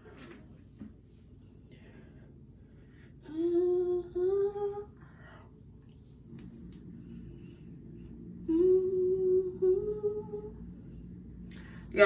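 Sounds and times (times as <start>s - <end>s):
woman humming: 3.2s - 5.0s, 8.4s - 11.1s.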